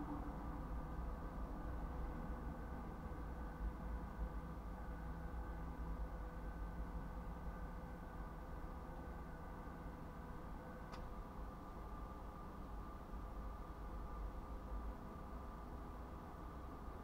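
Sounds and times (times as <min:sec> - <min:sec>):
steady low hum: 0:00.0 - 0:17.0.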